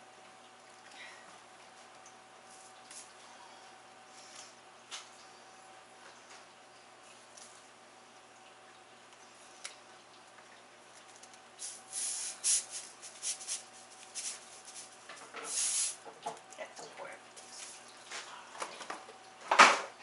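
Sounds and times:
salt pouring from canister: 11.6s - 16.1s.

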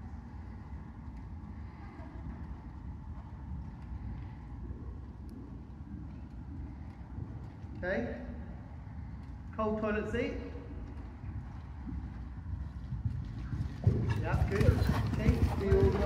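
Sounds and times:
horse hoofbeats on sand: 10.8s - 16.0s.

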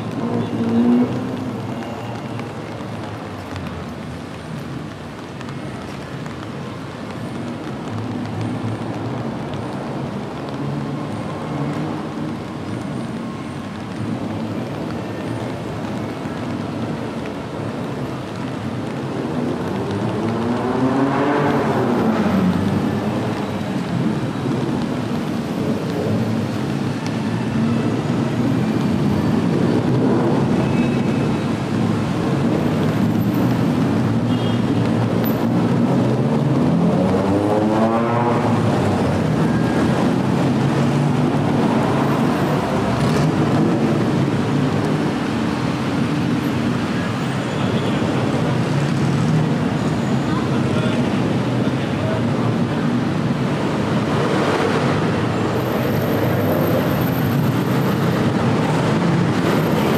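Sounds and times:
rain: 0.0s - 59.9s
traffic on wet street: 0.0s - 59.9s.

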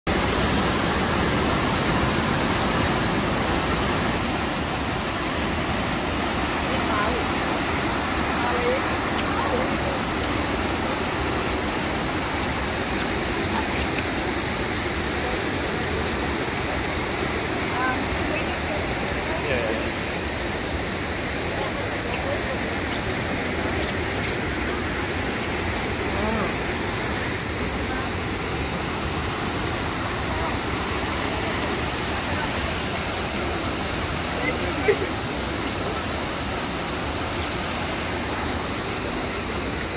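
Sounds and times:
river rapids rushing over boulders: 0.1s - 39.9s.

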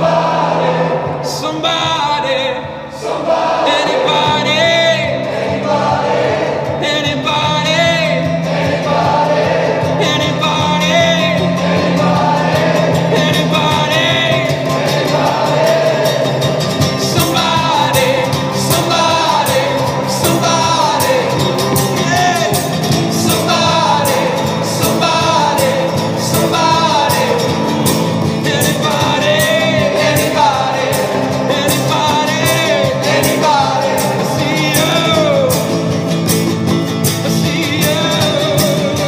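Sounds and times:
acoustic rock band playing: 0.0s - 39.0s
group vocals: 0.0s - 39.0s
box-drum beat: 3.9s - 39.0s.

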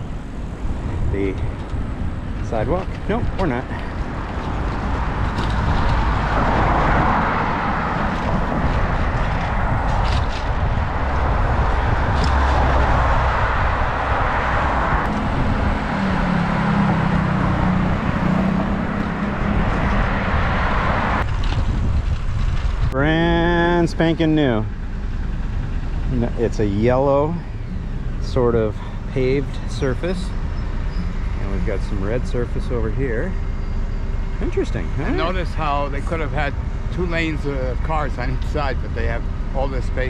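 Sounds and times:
wind rushing over microphone: 0.0s - 23.2s
low vehicle engine hum: 0.0s - 40.0s
passing cars: 0.0s - 40.0s.

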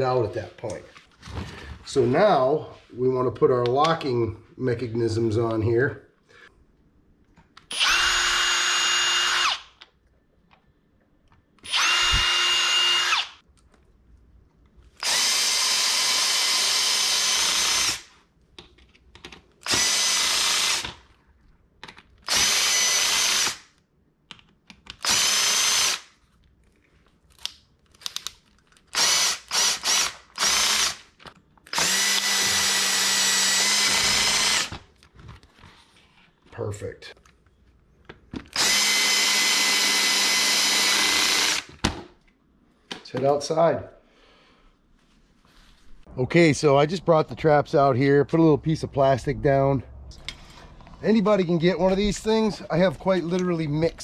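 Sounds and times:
cordless drill driving screws: 7.7s - 9.7s, 11.6s - 13.4s, 15.0s - 18.1s, 19.6s - 21.0s, 22.3s - 23.6s, 25.0s - 26.1s, 28.9s - 31.0s, 31.7s - 34.8s, 38.5s - 41.8s.

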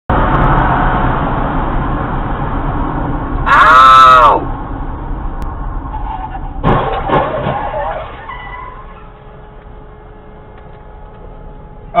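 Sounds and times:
car road and engine noise: 0.1s - 12.0s
loud pitched cry: 3.5s - 4.5s.

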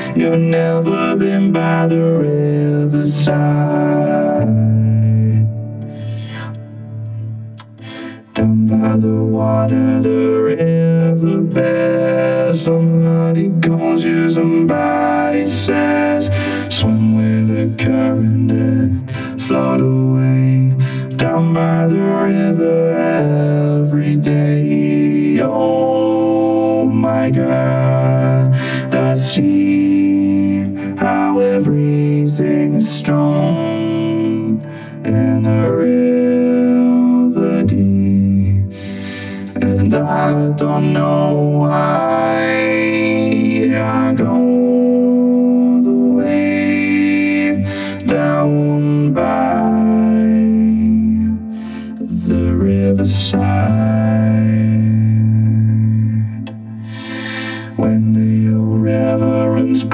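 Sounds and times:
synthesizer sustained chords: 0.0s - 59.9s.

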